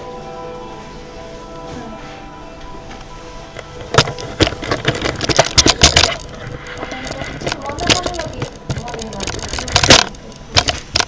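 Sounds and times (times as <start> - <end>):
rapid clicks and rattles: 3.6 - 11.0.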